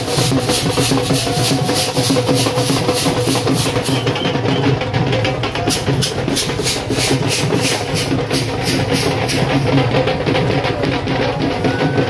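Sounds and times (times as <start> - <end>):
crowd noise: 0.0 - 12.0
cymbals clashing: 5.6 - 9.8.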